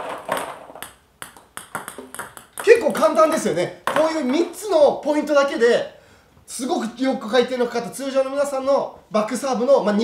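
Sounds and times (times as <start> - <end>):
paddle striking table tennis ball: 0.0 - 4.4
ball bouncing on table: 0.0 - 4.5
speech: 2.6 - 10.0.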